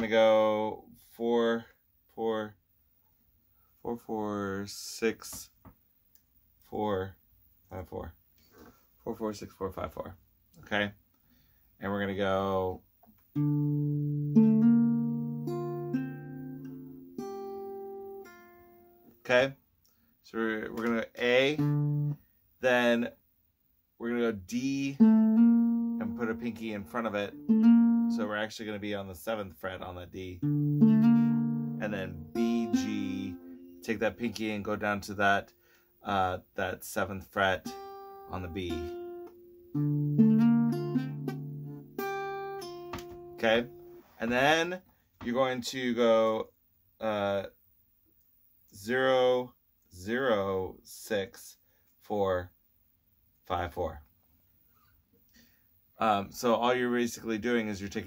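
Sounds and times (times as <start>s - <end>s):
acoustic guitar picked notes: 13.3s - 19.4s, 20.8s - 23.0s, 24.5s - 28.5s, 30.2s - 36.2s, 36.9s - 44.6s.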